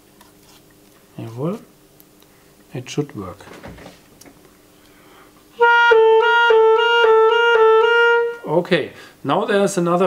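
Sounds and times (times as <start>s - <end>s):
clarinet trilling two notes: 5.6s - 8.5s.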